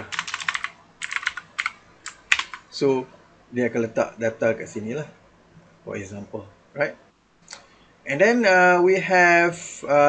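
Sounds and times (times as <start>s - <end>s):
typing on computer keyboard: 0.0s - 2.7s.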